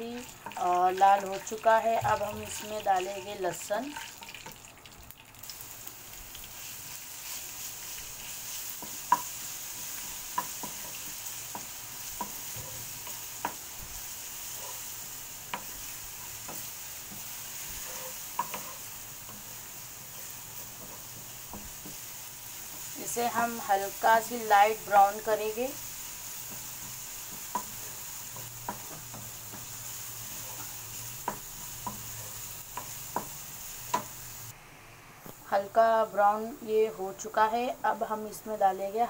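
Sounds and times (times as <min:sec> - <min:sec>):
food sizzling in hot oil: 0:00.0 - 0:34.6
wooden spatula tapping pan: 0:08.8 - 0:13.7, 0:20.6 - 0:22.1, 0:26.4 - 0:29.8, 0:30.4 - 0:34.2.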